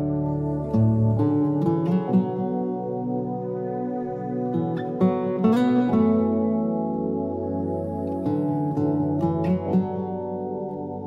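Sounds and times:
slow plucked guitar: 0.0 - 11.0.

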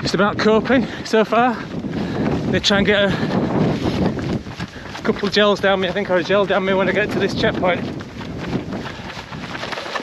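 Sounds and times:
running footsteps: 0.0 - 10.0
wind buffeting microphone: 0.0 - 10.0.

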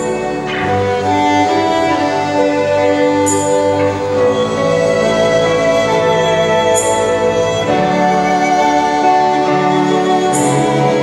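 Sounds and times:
violin and flute melody: 0.0 - 11.0.

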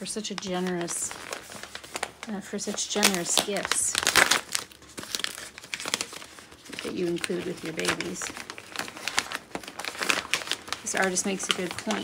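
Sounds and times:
paper crinkling: 0.0 - 12.0.

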